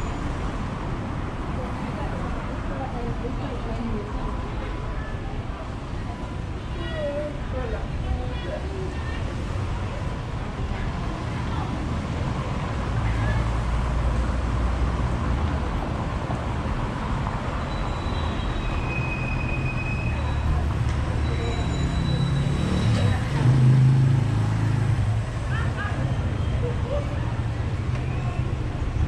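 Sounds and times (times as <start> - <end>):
passing car engines rumbling: 0.0 - 29.0.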